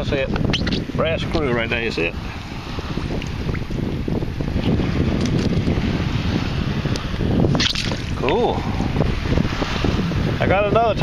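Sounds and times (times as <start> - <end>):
wind buffeting microphone: 0.0 - 11.0
water sloshing: 7.5 - 8.7.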